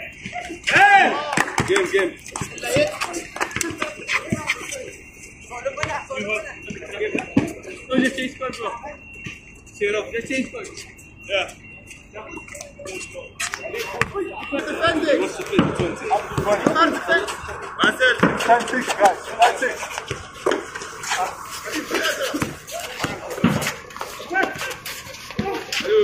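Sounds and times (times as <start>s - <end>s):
players calling out: 13.6s - 26.0s.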